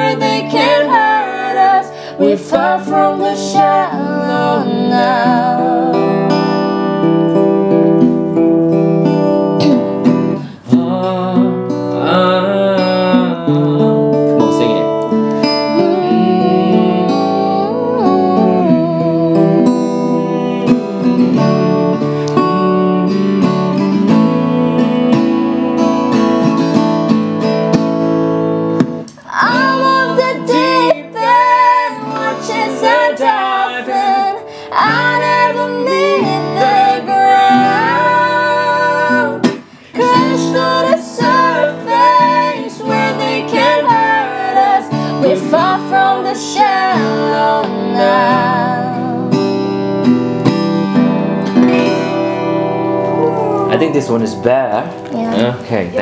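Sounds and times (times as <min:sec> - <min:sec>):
woman singing: 0:00.0 - 0:07.1, 0:15.4 - 0:26.6, 0:29.2 - 0:49.9, 0:55.1 - 0:55.6
acoustic guitar strumming: 0:00.0 - 0:56.0
man singing: 0:10.4 - 0:15.0, 0:19.9 - 0:26.4, 0:30.4 - 0:34.4.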